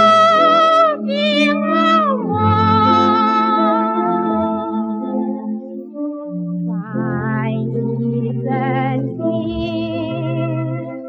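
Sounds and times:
woman singing with vibrato: 0:00.0 - 0:05.7, 0:06.7 - 0:11.0
instrumental accompaniment: 0:00.0 - 0:11.0.

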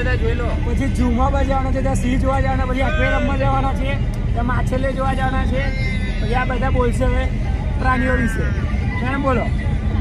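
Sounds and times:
road vehicle rumble: 0:00.0 - 0:10.0
voices talking: 0:00.0 - 0:10.0.

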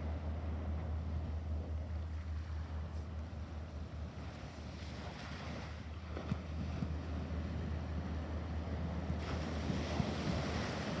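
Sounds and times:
wind buffeting microphone: 0:00.0 - 0:11.0
waves breaking on sandy beach: 0:02.0 - 0:11.0.

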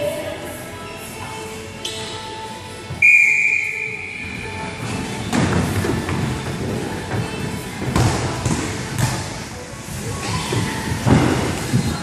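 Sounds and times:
referee's whistle long blast: 0:03.0 - 0:04.2.

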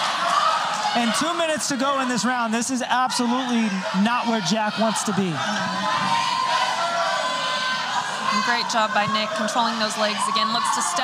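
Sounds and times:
crowd hubbub: 0:00.0 - 0:11.0
long held shout: 0:03.2 - 0:11.0.

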